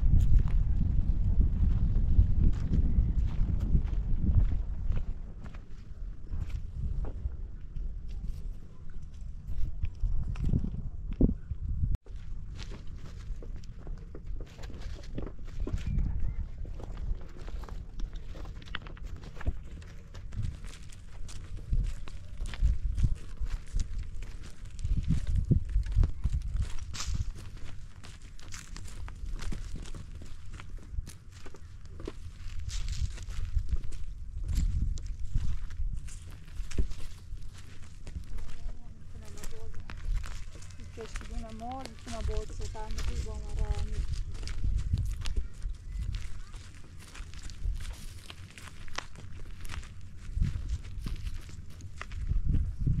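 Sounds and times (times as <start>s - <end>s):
footsteps crunching on stony ground: 0.0s - 53.0s.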